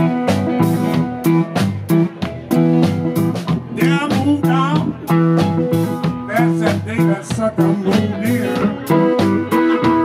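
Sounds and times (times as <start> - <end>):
blues band playing: 0.0 - 10.0
drum kit beat: 0.0 - 10.0
upright bass: 0.0 - 10.0.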